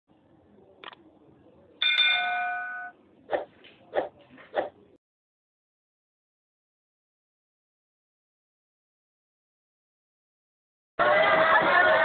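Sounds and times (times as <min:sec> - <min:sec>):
bell chime: 0:01.8 - 0:02.9.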